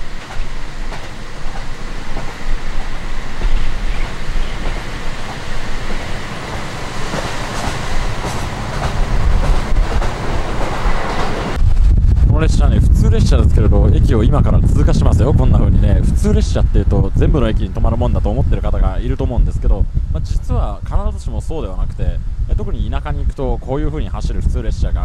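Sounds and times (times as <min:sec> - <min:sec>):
train cabin rumble: 0:00.0 - 0:25.0
wheels clicking over rail joints: 0:00.2 - 0:11.5.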